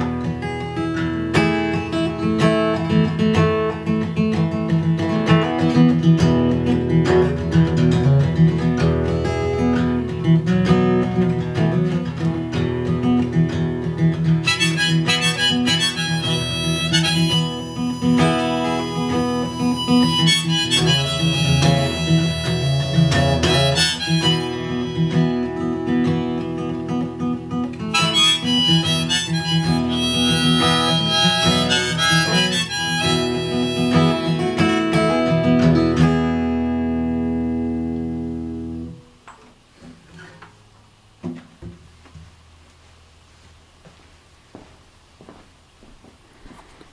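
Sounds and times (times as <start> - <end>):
acoustic guitar strumming: 0.0 - 42.3
harmonica melody: 14.2 - 36.5.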